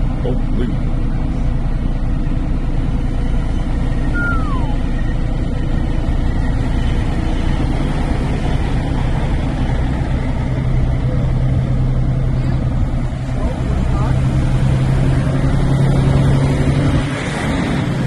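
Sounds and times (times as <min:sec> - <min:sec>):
truck engine rumble: 0:00.0 - 0:18.0.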